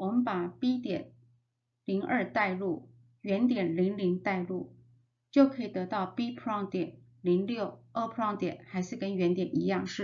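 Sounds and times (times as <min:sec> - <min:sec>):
woman narrating: 0:00.0 - 0:01.2, 0:01.8 - 0:10.0.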